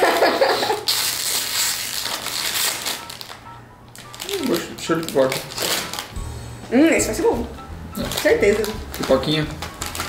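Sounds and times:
snack bag crinkling open: 0.7s - 3.4s, 4.0s - 6.2s, 8.0s - 10.0s.

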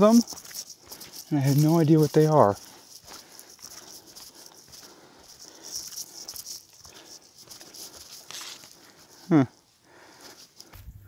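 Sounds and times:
steady high hiss: 0.0s - 10.7s
footsteps through undergrowth: 0.0s - 11.0s
person saying huh: 9.3s - 9.6s.

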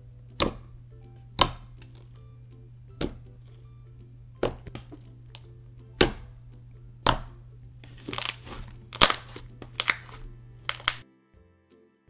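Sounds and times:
quiet background music: 0.0s - 12.0s
slime clicking and popping: 1.4s - 1.9s, 4.4s - 6.3s, 7.0s - 11.0s.

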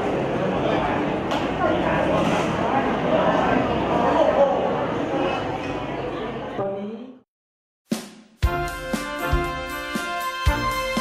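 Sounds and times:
indistinct voices in a hall: 0.0s - 7.2s.

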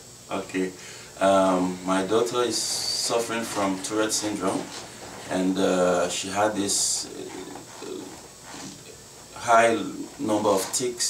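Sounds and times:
people talking: 0.3s - 11.0s.

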